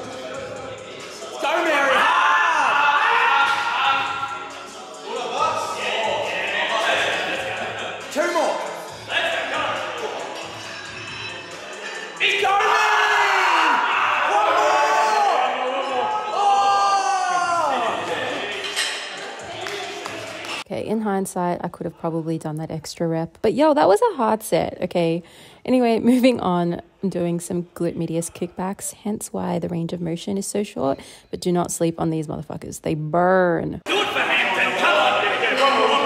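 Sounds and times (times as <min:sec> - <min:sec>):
music playing: 0:00.0 - 0:20.7, 0:33.8 - 0:36.0
men shouting encouragement: 0:01.4 - 0:04.3.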